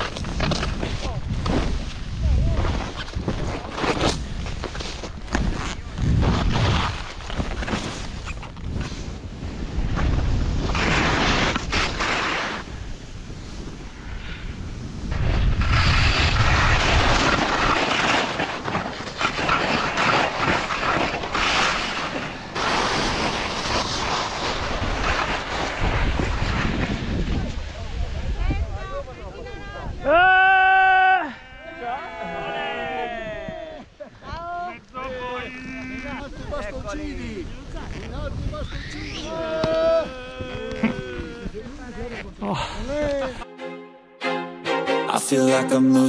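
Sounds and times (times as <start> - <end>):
skis scraping over snow: 0.0 - 28.3
wind buffeting microphone: 12.6 - 17.7, 22.3 - 30.1, 36.2 - 43.4.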